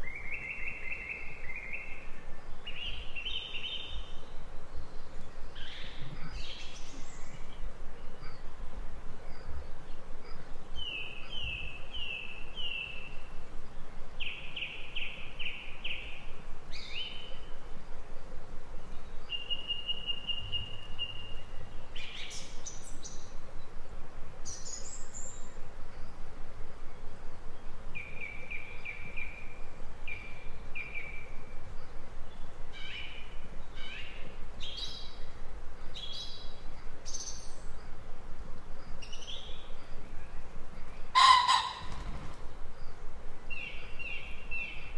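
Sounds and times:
songbird singing: 0:00.0 - 0:44.9
steady background hiss: 0:00.0 - 0:44.9.

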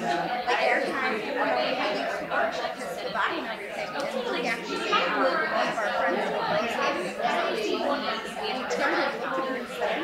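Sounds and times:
women talking in a large hall: 0:00.0 - 0:10.0.

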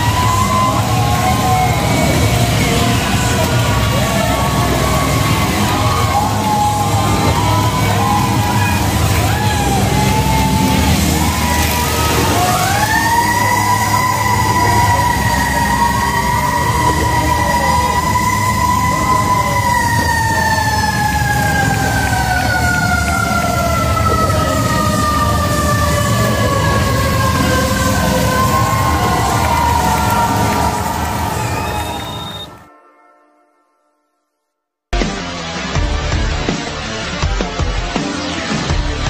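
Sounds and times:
siren wailing: 0:00.0 - 0:32.7.

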